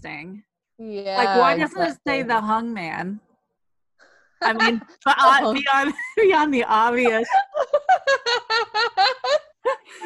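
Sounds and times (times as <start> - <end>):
woman laughing: 7.0 - 10.0.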